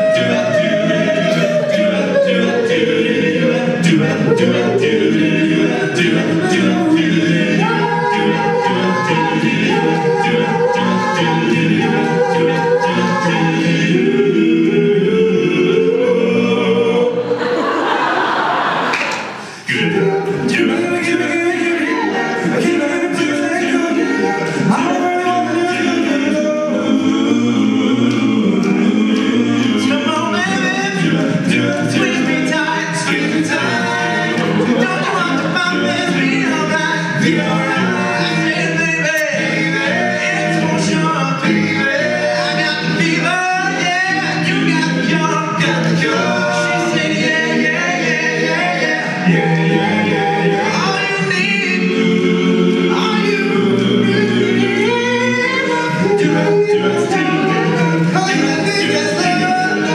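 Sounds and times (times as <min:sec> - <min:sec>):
male a cappella group singing: 0:00.0 - 0:59.9.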